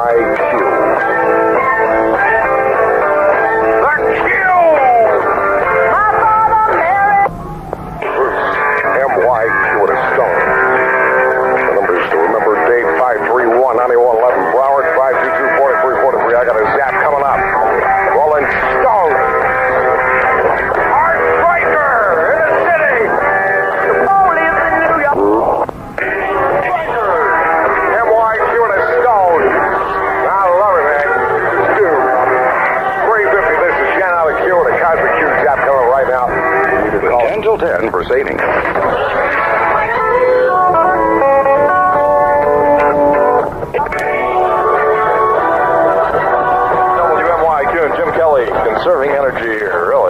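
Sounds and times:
muffled radio voice: 0:00.0 - 0:00.8, 0:08.0 - 0:10.5, 0:11.6 - 0:19.3, 0:20.6 - 0:23.2, 0:23.8 - 0:29.6, 0:30.2 - 0:32.2, 0:33.0 - 0:40.0, 0:46.8 - 0:50.0
muffled radio music: 0:00.0 - 0:50.0.

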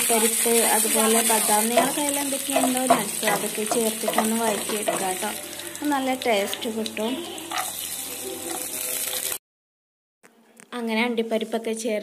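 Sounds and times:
nuts sizzling in a pan: 0:00.0 - 0:09.4.

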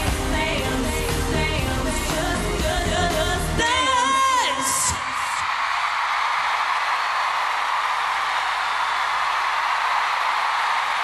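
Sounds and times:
person singing: 0:00.0 - 0:05.2.

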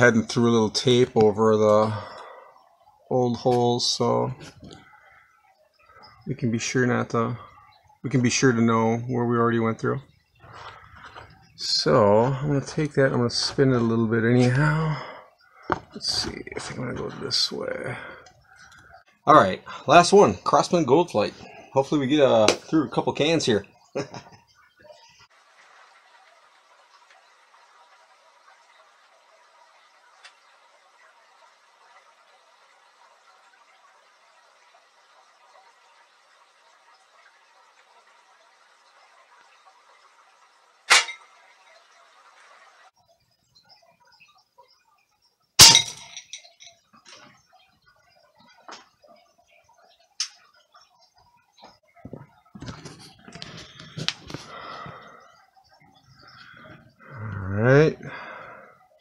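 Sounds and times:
faint steady hiss: 0:00.0 - 0:59.0.

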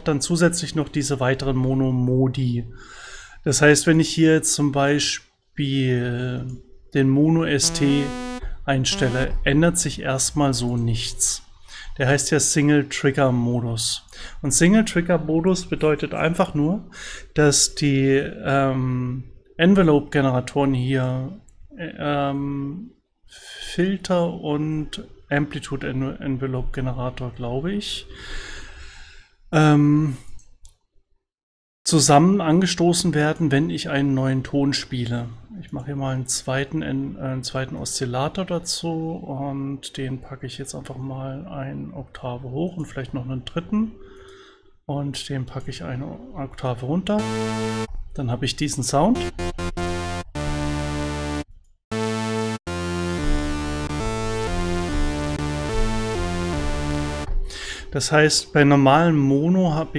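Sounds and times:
synthesizer notes: 0:07.6 - 0:09.4, 0:47.2 - 0:48.0, 0:49.1 - 0:57.4.

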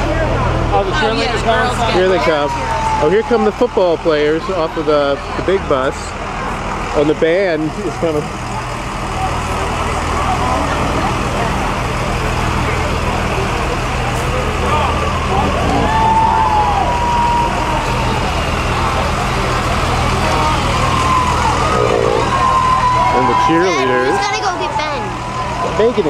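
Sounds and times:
bus engines idling: 0:00.0 - 0:26.0
voices: 0:00.0 - 0:26.0.

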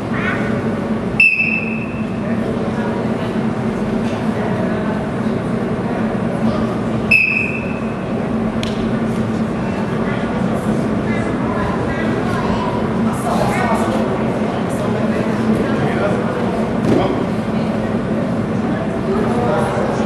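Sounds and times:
crowd chatter: 0:00.0 - 0:20.0
referee's whistle blasts: 0:01.2 - 0:02.0, 0:07.1 - 0:07.9.

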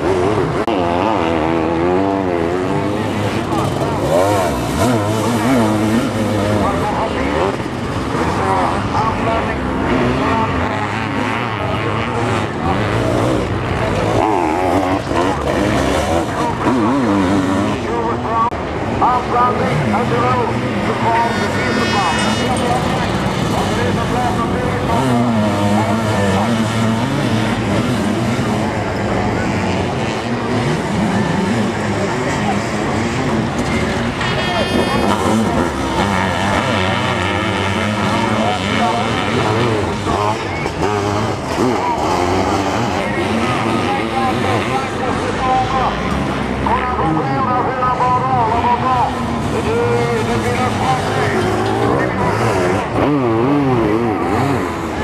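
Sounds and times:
motorcycle engines revving: 0:00.0 - 0:55.0.

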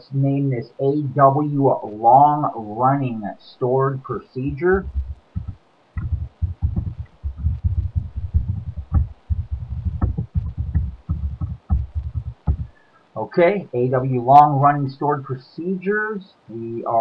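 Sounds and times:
computer keyboard typing: 0:04.8 - 0:12.7.

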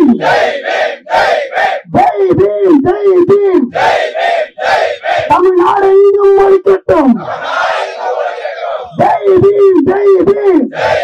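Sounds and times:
crowd shouting a response: 0:00.0 - 0:01.9, 0:03.7 - 0:05.4, 0:07.2 - 0:09.0, 0:10.7 - 0:11.0
person shouting into a microphone: 0:01.9 - 0:03.7, 0:05.2 - 0:07.2, 0:08.9 - 0:10.8.

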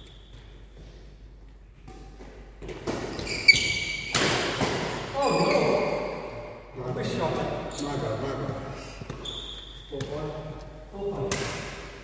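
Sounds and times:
shoes squeaking on court floor: 0:00.0 - 0:01.1, 0:01.8 - 0:04.2, 0:05.0 - 0:06.4, 0:07.6 - 0:10.7
racket hitting shuttlecock: 0:01.8 - 0:05.2, 0:11.3 - 0:12.0.

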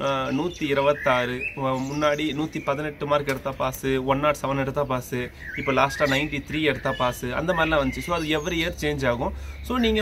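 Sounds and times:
bird chirping: 0:00.0 - 0:10.0
man talking: 0:00.0 - 0:10.0.

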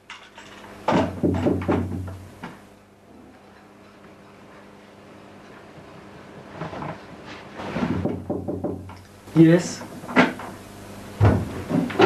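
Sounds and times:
knocks on wooden cabinet: 0:00.9 - 0:02.2, 0:07.8 - 0:09.0, 0:11.2 - 0:12.0.

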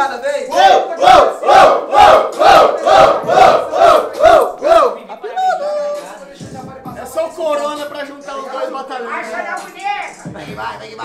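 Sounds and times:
men shouting rhythmic chant: 0:00.5 - 0:05.0.

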